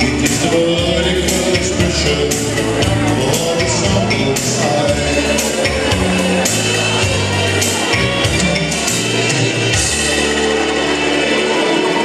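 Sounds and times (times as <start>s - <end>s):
live dance band music: 0.0s - 12.0s.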